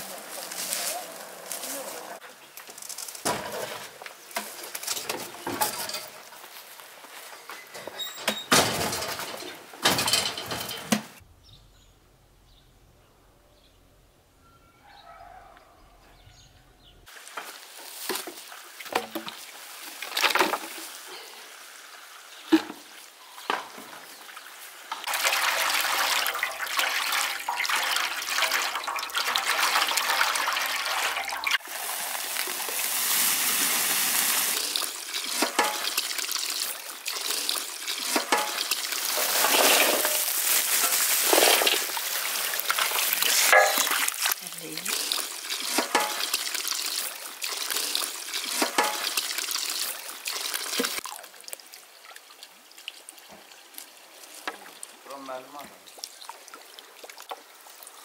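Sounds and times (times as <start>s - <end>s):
hose water gushing into metal basin: 25.1s - 51.2s.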